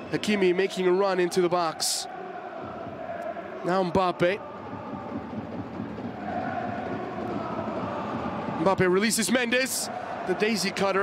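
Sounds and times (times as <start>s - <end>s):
stadium crowd hum: 0.0s - 11.0s.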